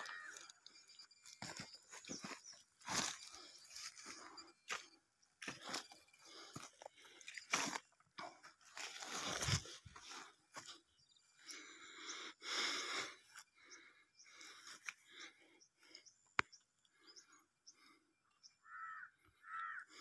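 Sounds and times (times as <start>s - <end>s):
crunching and scraping on dry ground: 0.0s - 11.8s.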